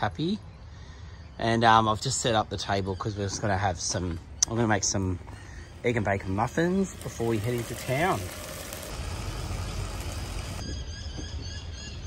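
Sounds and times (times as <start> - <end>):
outdoor background noise: 0.0 - 12.0
bacon sizzling in a saucepan: 6.4 - 10.6.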